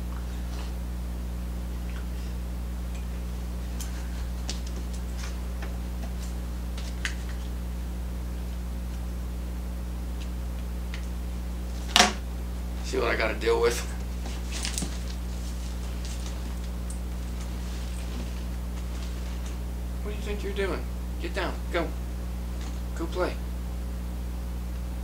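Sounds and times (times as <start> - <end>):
steady low hum: 0.0 - 25.0.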